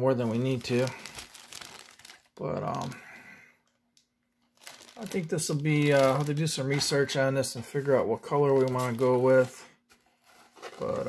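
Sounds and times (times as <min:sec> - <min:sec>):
plastic bag crinkling: 0:00.1 - 0:03.1, 0:04.4 - 0:07.3, 0:08.2 - 0:09.6.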